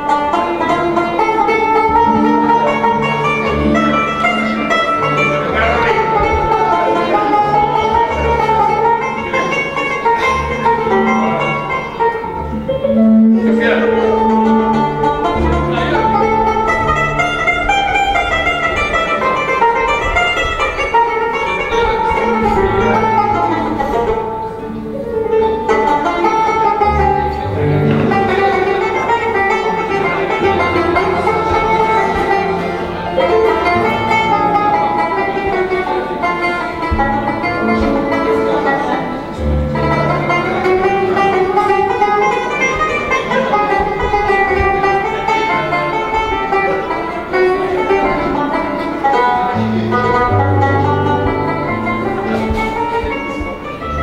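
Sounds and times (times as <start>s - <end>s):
banjo picked melody: 0.0s - 54.0s.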